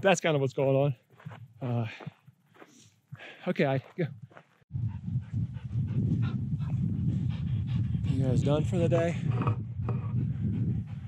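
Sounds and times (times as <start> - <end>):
steady low rumble: 4.7 - 11.0
dog panting: 4.8 - 9.2, 9.9 - 11.0.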